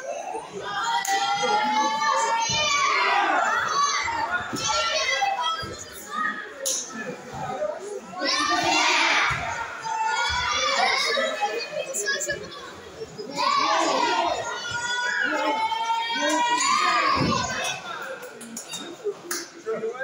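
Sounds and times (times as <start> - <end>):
children shouting in echoing hall: 8.2 - 17.8.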